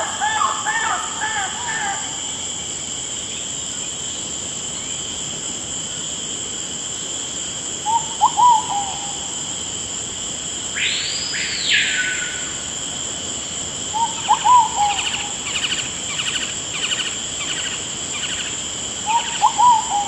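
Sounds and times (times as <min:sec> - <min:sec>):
insect-like trill: 0:10.7 - 0:20.0.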